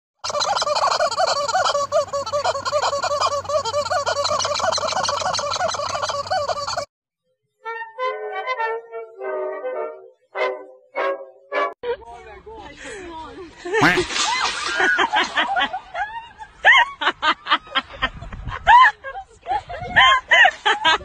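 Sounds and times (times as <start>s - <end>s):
rubber chicken toy squawking: 0.2s - 6.9s, 13.8s - 14.1s.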